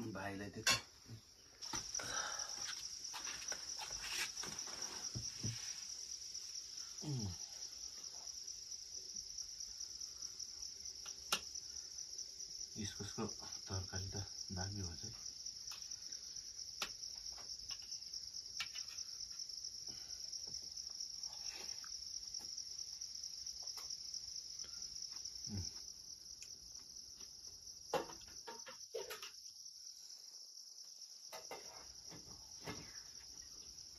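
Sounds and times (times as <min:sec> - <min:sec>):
insects chorus: 0:00.0 - 0:33.9.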